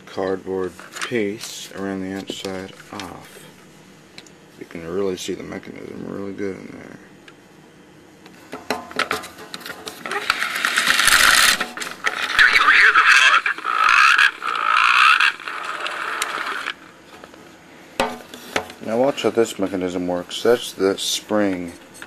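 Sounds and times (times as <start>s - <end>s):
tinny talking toy recording: 12.1s - 16.7s.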